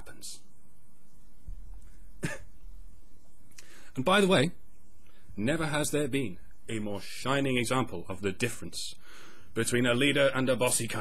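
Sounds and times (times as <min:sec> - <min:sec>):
low room hum: 0:00.0 - 0:11.0
man coughing breath: 0:02.2 - 0:02.5
soft intake of breath: 0:03.5 - 0:04.0, 0:09.0 - 0:09.6.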